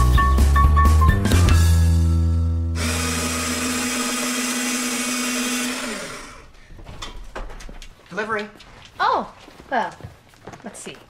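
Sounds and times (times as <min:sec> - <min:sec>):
background music: 0:00.0 - 0:03.2
paper shredder running: 0:02.8 - 0:06.5.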